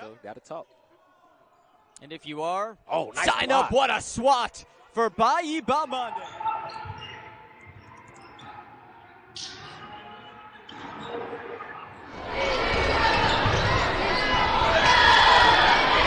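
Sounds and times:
loud crowd noise: 0.0s - 16.0s.

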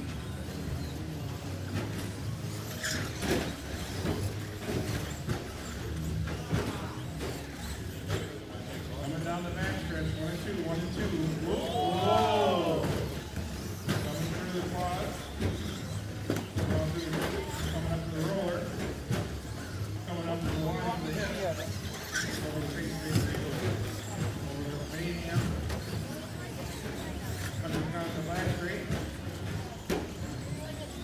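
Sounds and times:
indistinct background chatter: 0.0s - 31.0s
rc car motors whining: 0.0s - 31.0s.

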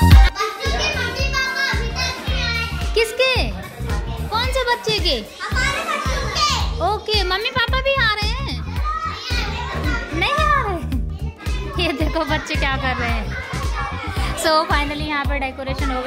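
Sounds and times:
music with a steady beat: 0.0s - 4.2s, 5.0s - 16.0s
children shouting and squealing: 0.0s - 6.8s, 8.6s - 14.9s.

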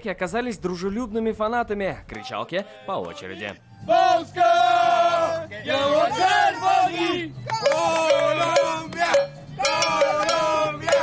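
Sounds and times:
football fans chanting: 2.6s - 11.0s.

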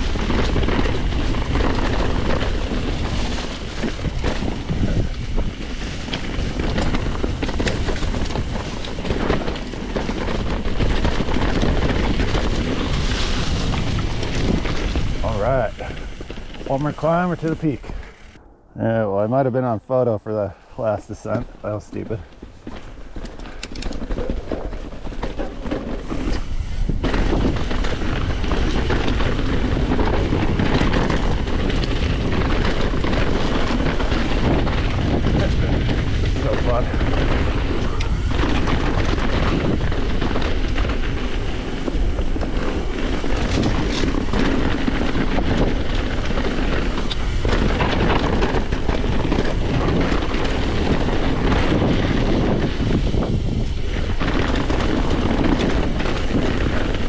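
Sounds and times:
bike knocks and rattles: 0.0s - 18.4s, 22.0s - 57.0s
tyre noise on dirt: 0.0s - 18.4s, 21.2s - 57.0s
wind buffeting microphone: 0.0s - 57.0s.

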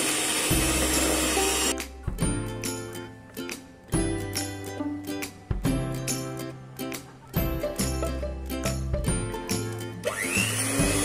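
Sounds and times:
electric hand mixer beating: 0.0s - 1.8s, 10.0s - 11.0s
plucked-string background music: 0.4s - 11.0s.

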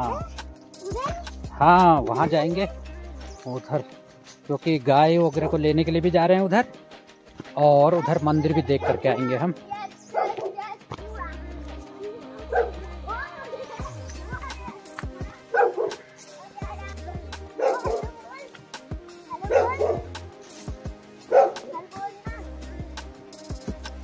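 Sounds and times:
background music with bass line: 0.0s - 24.0s
dog barking: 8.8s - 9.1s, 10.1s - 10.7s, 12.5s - 12.9s, 15.5s - 16.1s, 17.5s - 18.2s, 19.3s - 20.1s, 21.3s - 21.9s.

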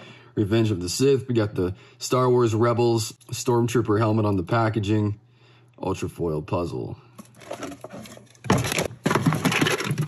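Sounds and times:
boxes and tins clattering in tote: 7.2s - 10.0s.

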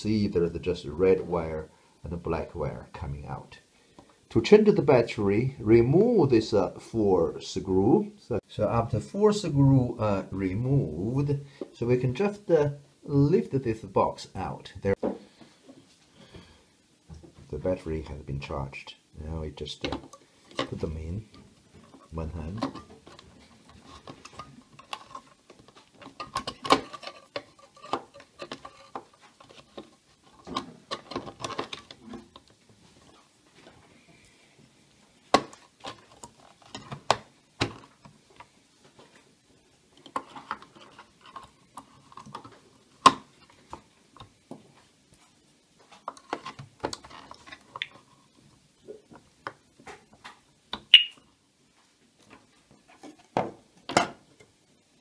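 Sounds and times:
high chirp: 50.9s - 51.2s.

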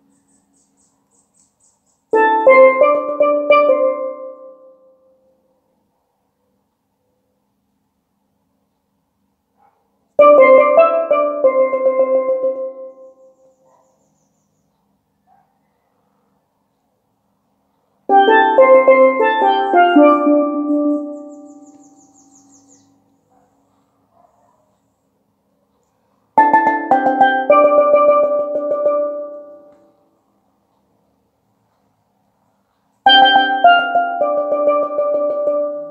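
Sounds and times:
steelpan melody: 2.2s - 4.9s, 10.2s - 13.4s, 18.1s - 22.8s, 26.4s - 29.9s, 33.1s - 35.9s.

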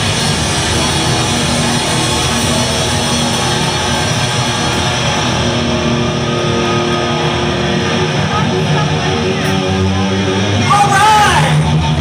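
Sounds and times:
live rock band playing loud: 0.0s - 12.0s.

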